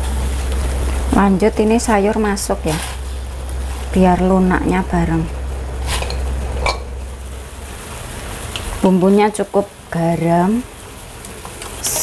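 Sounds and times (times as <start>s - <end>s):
steady low hum: 0.0s - 11.6s
water boiling and bubbling: 0.0s - 12.0s.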